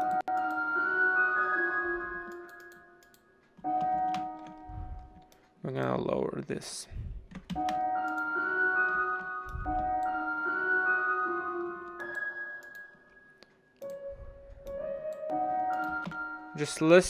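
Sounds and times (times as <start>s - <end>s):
synth melody with held notes: 0.0s - 5.1s, 7.6s - 17.0s.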